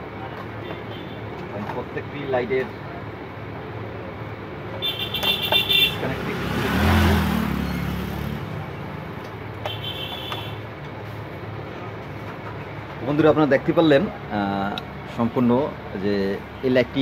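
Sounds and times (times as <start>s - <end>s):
vehicle passing: 5.2s - 9.6s.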